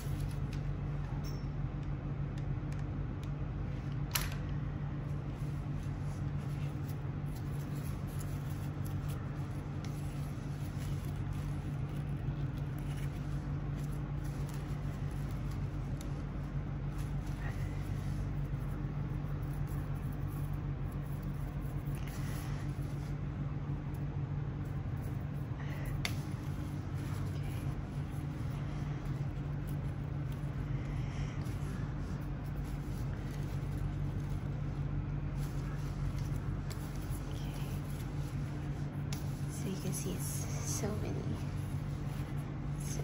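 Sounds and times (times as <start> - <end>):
ribbon rustling and tapping: 0.0 - 1.4, 5.1 - 23.2, 23.8 - 43.0
low background hum: 0.0 - 43.0.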